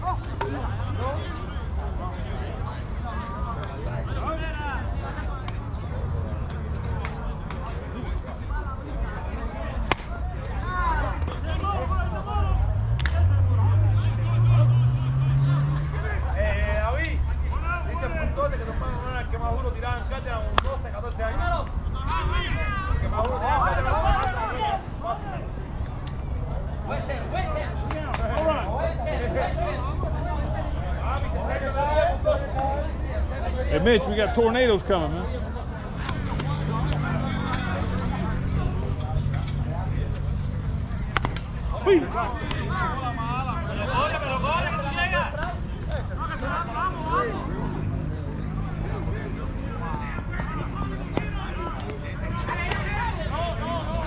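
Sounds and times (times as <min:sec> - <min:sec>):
players calling out: 0:00.0 - 0:54.0
bat hitting ball crack: 0:09.8 - 0:10.2, 0:20.5 - 0:20.8, 0:41.1 - 0:41.6.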